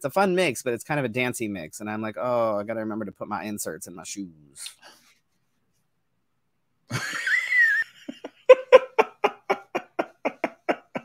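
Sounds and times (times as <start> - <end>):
person laughing: 6.9 - 11.0.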